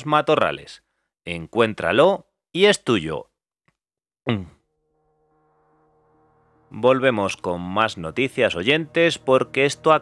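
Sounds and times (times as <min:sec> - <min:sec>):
buzz gliding down in pitch: 0:04.7 - 0:10.0
low sustained tones: 0:04.7 - 0:10.0.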